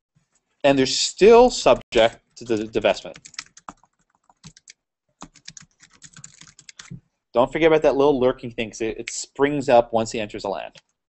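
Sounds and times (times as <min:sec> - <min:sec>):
typing on computer keyboard: 0:02.0 - 0:07.0.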